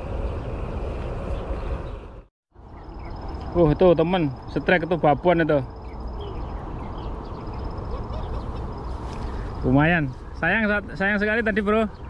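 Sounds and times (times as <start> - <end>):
high pulsed insect trill: 2.6 - 10.2.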